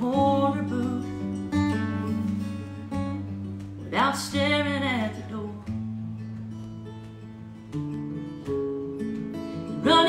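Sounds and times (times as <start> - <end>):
acoustic guitar strummed and picked: 0.0 - 10.0.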